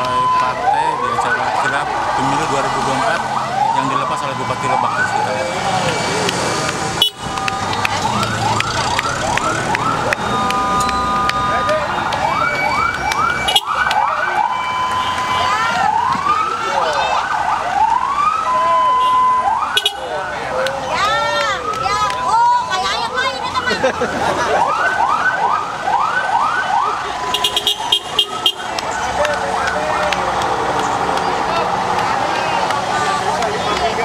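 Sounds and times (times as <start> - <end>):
vehicle sirens yelping: 0.0 - 34.0
siren steady held tones: 7.0 - 20.5.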